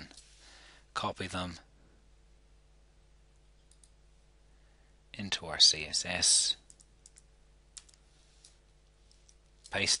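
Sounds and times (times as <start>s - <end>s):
faint room hum: 0.0s - 10.0s
computer clicks: 3.6s - 4.0s, 6.6s - 9.8s.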